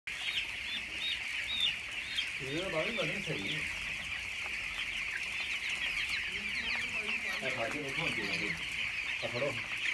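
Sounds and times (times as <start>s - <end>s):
chicks peeping: 0.1s - 9.9s.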